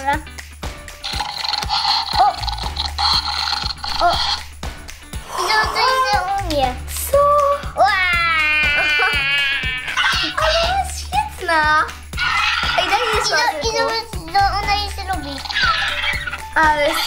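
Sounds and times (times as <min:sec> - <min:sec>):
toy buzzing purr: 0:01.0 - 0:04.5, 0:15.4 - 0:16.5
electronic raptor calls: 0:12.2 - 0:13.3, 0:15.4 - 0:16.5.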